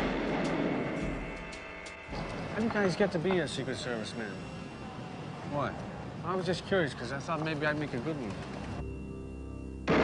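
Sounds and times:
faint held music tones: 0.0s - 10.0s.

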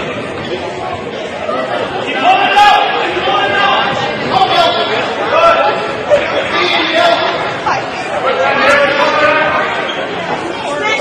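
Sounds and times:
onlookers talking and calling out: 0.0s - 11.0s.

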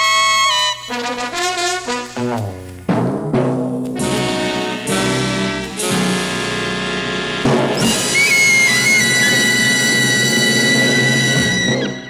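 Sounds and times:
big band final chord: 1.0s - 10.4s.

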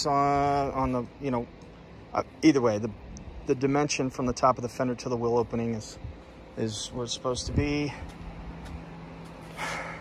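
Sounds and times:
man exhaling breathily: 9.4s - 10.0s.

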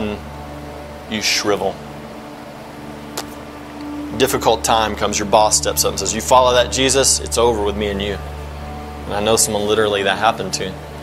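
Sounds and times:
steady low hum: 0.0s - 11.0s
faint held tone: 3.0s - 9.2s.

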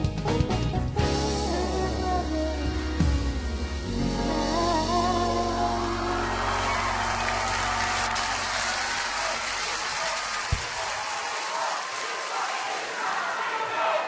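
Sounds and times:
backing music: 0.0s - 10.1s
audience cheering and applauding: 5.7s - 14.0s.

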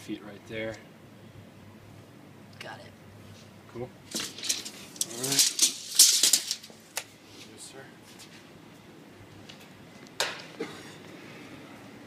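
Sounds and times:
tape measure blade rattling: 4.1s - 6.8s.

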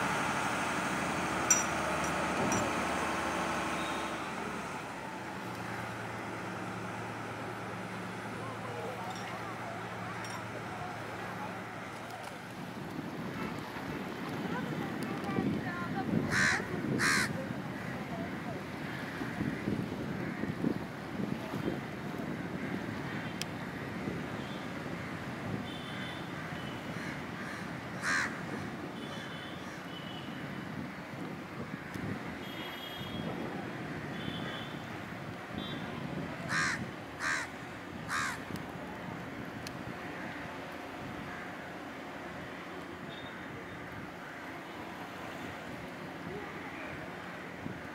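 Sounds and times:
waterside noise: 0.0s - 47.9s
crow cawing: 16.3s - 17.3s, 27.0s - 28.4s, 36.5s - 38.4s.

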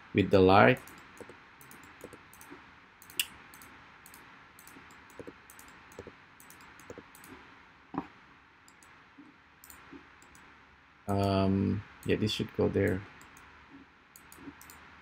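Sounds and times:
low steady hiss: 0.0s - 15.0s
mouse and keyboard clicks: 0.8s - 7.4s, 9.6s - 10.5s, 14.2s - 14.8s.

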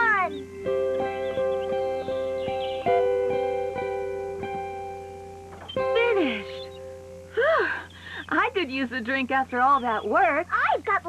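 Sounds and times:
plucked guitar notes: 0.0s - 8.0s.

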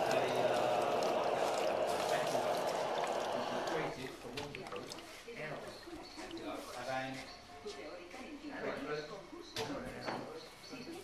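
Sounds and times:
steam jet hissing: 0.0s - 3.9s.

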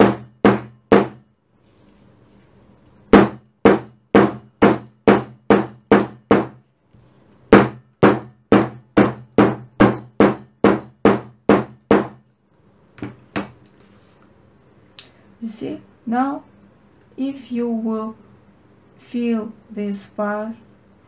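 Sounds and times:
hammer striking leather: 0.0s - 1.2s, 3.1s - 6.6s, 7.5s - 12.2s.

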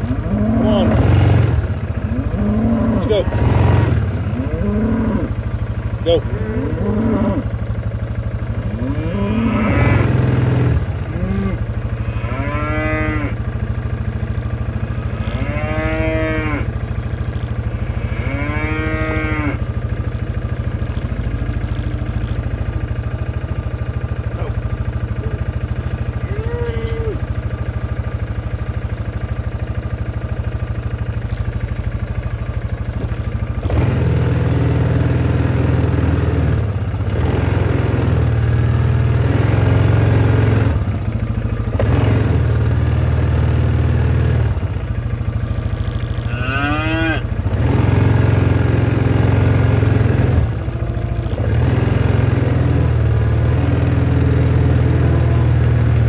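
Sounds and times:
cattle mooing: 0.0s - 5.4s, 6.0s - 7.6s, 8.6s - 13.6s, 14.8s - 19.8s, 20.6s - 22.9s, 45.4s - 47.4s, 48.1s - 53.0s, 53.6s - 56.0s
steady low hum: 0.0s - 37.2s.

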